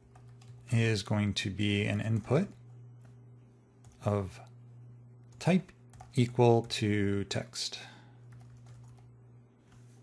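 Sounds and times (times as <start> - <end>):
faint keyboard typing: 0.0 - 4.6, 5.2 - 7.5, 8.2 - 10.0.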